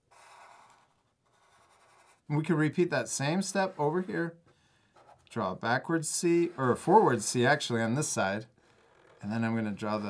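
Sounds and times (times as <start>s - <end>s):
marker scratching on paper: 0.1s - 2.3s, 8.6s - 10.0s.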